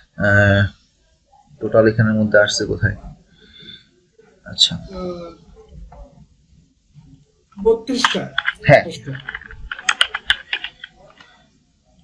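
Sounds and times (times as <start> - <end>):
computer keyboard typing: 7.9 - 11.4.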